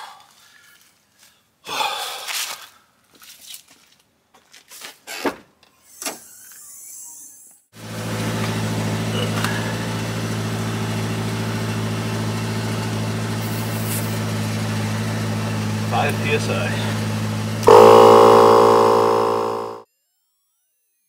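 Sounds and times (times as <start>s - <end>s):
air compressor humming: 15.5s - 19.8s.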